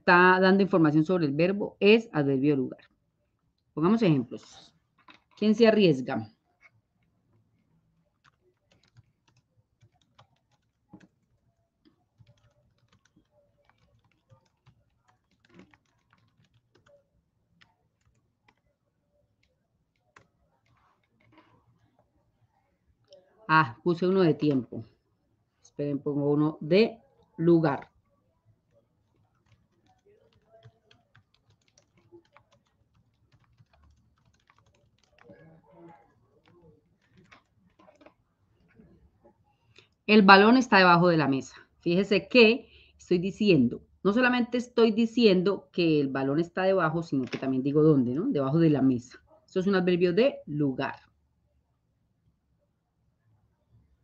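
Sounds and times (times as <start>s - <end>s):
typing on computer keyboard: 8.1s - 22.0s, 28.6s - 38.7s.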